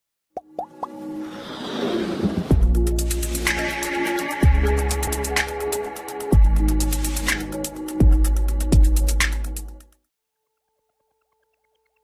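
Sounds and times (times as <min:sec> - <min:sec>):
short pops rising in pitch: 0:00.4 - 0:01.0.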